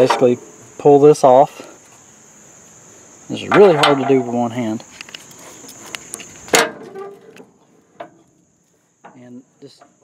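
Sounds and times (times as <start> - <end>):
small knocks: 3.5 - 8.4.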